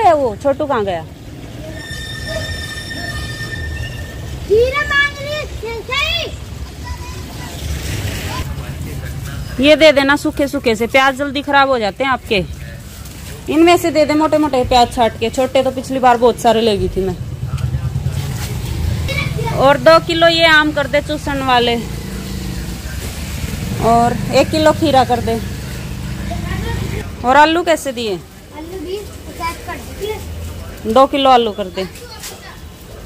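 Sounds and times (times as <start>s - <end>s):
woman's voice: 0.0s - 1.2s, 9.6s - 12.6s, 13.5s - 17.2s, 19.4s - 22.0s, 23.7s - 25.5s, 27.1s - 28.3s, 30.8s - 32.0s
street noise on wet road: 0.0s - 33.0s
low vehicle engine rumble: 11.9s - 27.4s.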